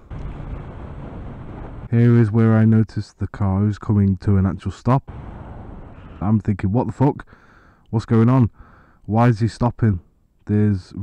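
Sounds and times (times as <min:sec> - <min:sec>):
motorcycle road noise: 0:00.0 - 0:01.9, 0:05.1 - 0:06.4
wind rushing: 0:00.0 - 0:01.9, 0:05.1 - 0:06.4.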